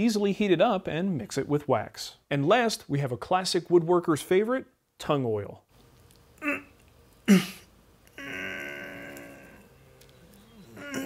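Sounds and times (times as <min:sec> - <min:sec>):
man's drawn-out vocal sound: 0:10.7 - 0:11.0.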